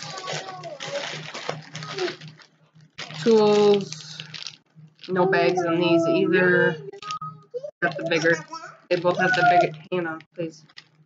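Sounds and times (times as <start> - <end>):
plastic packaging crinkling: 0.0 - 5.6, 7.8 - 11.0.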